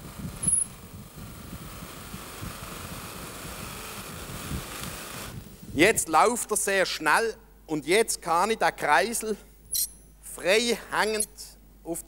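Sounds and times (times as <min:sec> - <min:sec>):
buffing wheel motor whirring: 0:00.0 - 0:05.4.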